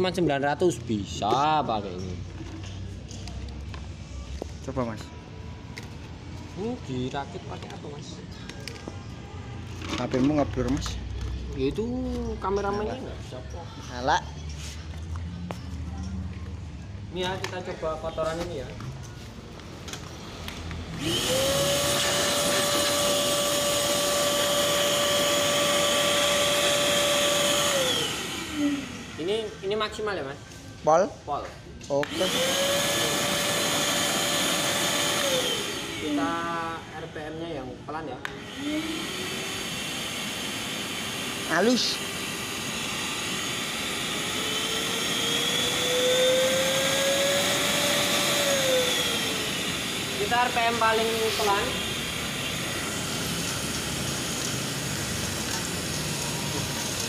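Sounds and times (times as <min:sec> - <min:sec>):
vacuum cleaner motor whining: 0:20.9 - 0:29.5, 0:32.0 - 0:36.9, 0:38.2 - 0:57.0.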